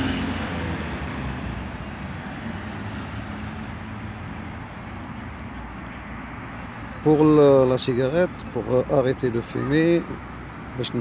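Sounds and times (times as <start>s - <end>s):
steady traffic noise: 0.0s - 11.0s
vehicle passing: 0.0s - 11.0s.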